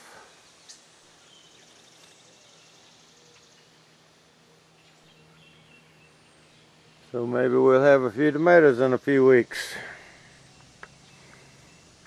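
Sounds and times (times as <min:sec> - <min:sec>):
distant bird chirps: 0:00.0 - 0:12.0
insects trilling: 0:00.0 - 0:12.0.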